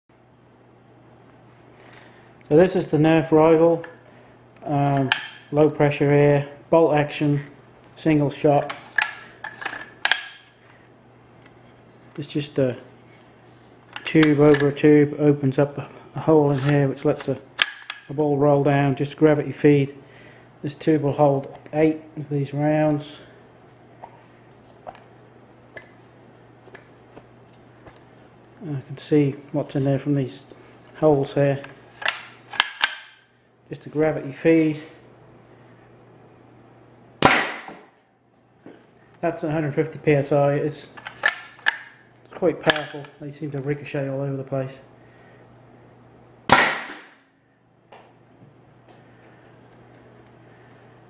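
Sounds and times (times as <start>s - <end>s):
faint steady hum: 0.1s - 51.0s
air launcher firing crack: 37.2s - 37.9s, 46.5s - 47.2s.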